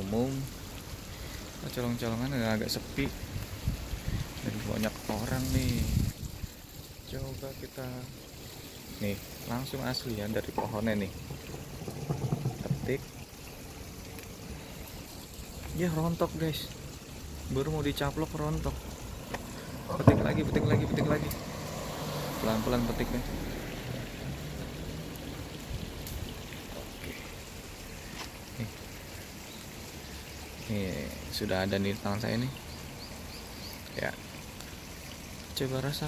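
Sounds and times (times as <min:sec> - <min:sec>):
steady rustling hiss: 0:00.0 - 0:36.0
rushing hiss: 0:02.6 - 0:13.2.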